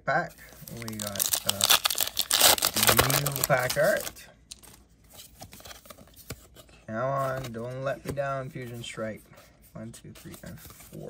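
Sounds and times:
trading cards rustling: 0.3s - 9.0s.

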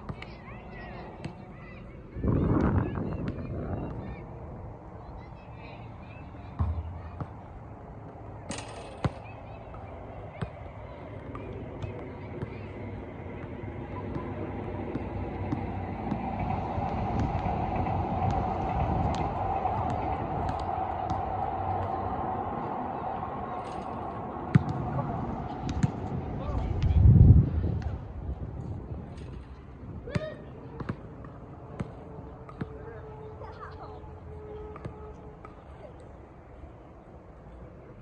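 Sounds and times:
outdoor background hum: 0.0s - 38.0s
ball kicks: 6.6s - 7.4s, 24.5s - 24.8s, 25.6s - 26.0s.

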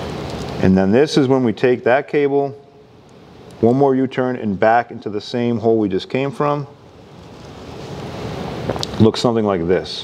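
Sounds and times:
cable rustling and scraping: 6.9s - 9.1s.

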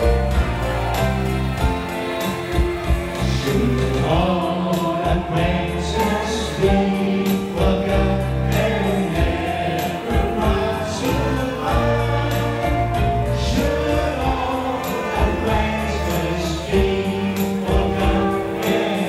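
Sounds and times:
group of singers singing: 0.0s - 19.0s
steady percussion: 0.0s - 19.0s.

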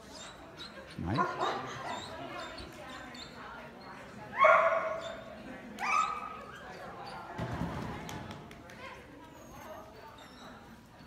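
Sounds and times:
dog barking: 1.1s - 1.8s, 4.4s - 5.2s.

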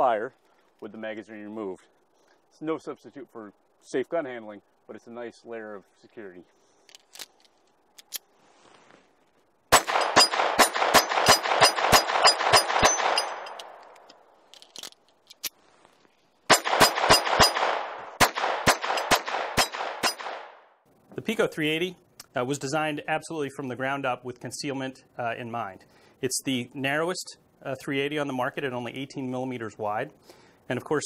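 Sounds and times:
gun handling clicks: 6.8s - 8.3s, 9.8s - 15.6s
pistol shots with echo: 9.7s - 13.8s, 16.5s - 20.6s.

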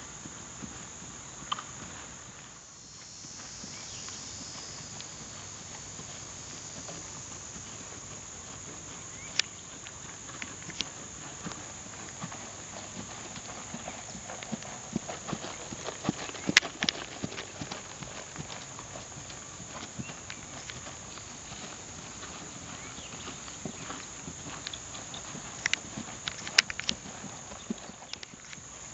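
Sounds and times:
horse hooves trotting on grass: 0.0s - 28.9s.

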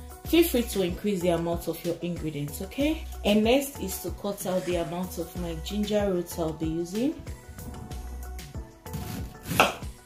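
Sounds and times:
knife cutting on wooden board: 8.9s - 9.8s.

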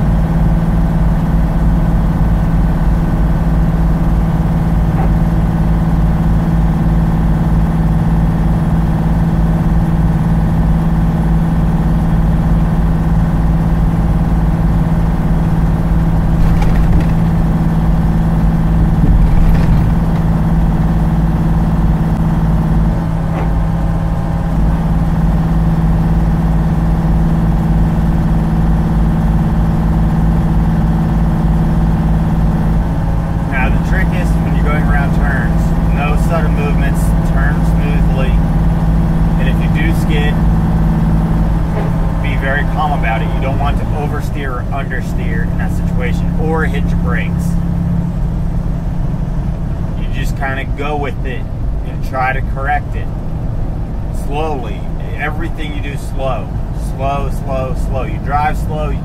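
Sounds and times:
diesel truck engine drone: 0.0s - 59.0s
road noise: 0.0s - 59.0s.

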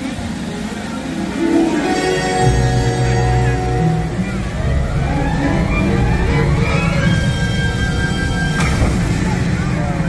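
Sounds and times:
loud low rumbling over speakers: 2.4s - 10.0s.

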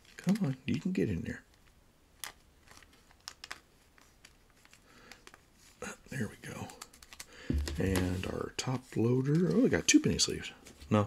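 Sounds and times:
light clicks and rustles: 1.5s - 5.8s, 6.5s - 7.3s
plastic sleeve crinkling: 2.2s - 5.5s.

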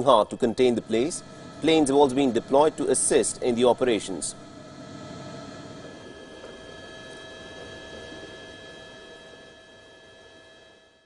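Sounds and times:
machine hum: 0.0s - 11.0s
thin steady tones: 0.0s - 11.0s.

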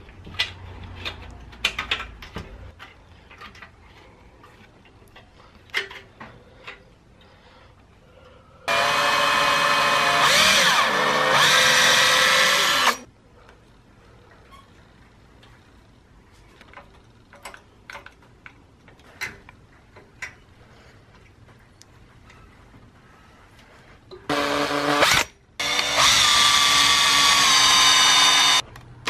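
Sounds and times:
power drill driving screw: 8.7s - 13.1s, 24.3s - 28.6s.

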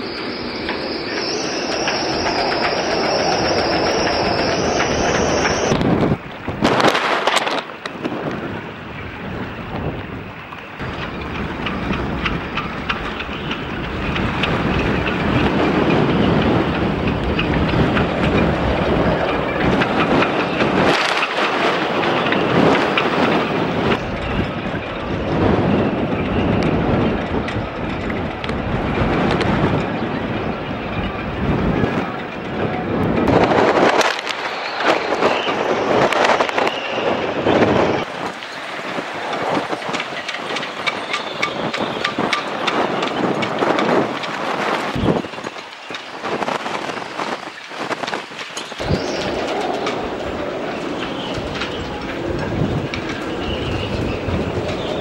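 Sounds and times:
wind howling and buffeting: 0.0s - 55.0s.

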